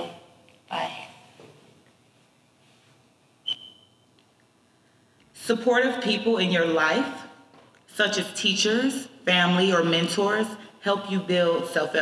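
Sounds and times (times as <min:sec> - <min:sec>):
short high beep: 0:03.4 - 0:04.1.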